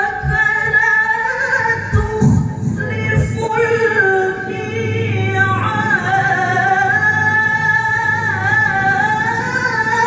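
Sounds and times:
woman chanting into microphone: 0.0s - 10.0s.

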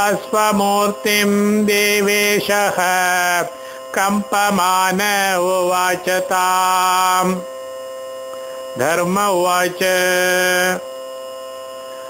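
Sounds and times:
man chanting: 0.0s - 7.5s, 8.8s - 10.8s
steady hum with constant tones: 0.0s - 12.0s.

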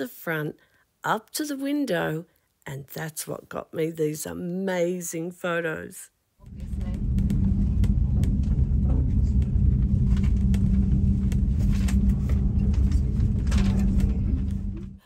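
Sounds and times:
cable car cabin rumble and hum: 6.4s - 15.0s.

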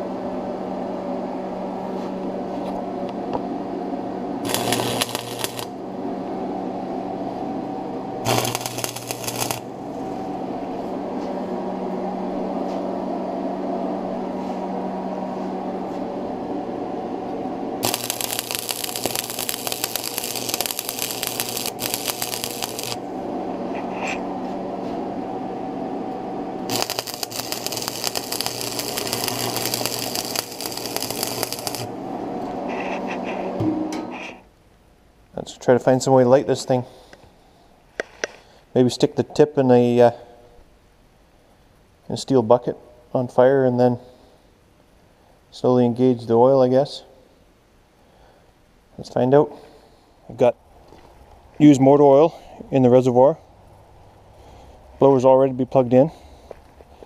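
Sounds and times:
steady hum: 0.0s - 39.0s
welder arc crackling: 4.4s - 5.8s, 8.2s - 9.9s, 17.8s - 23.2s, 26.6s - 32.6s.

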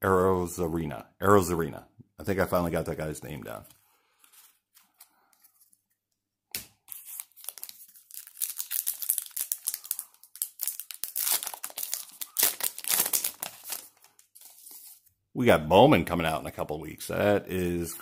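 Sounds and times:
wrapper tearing and crinkling: 6.8s - 14.9s.

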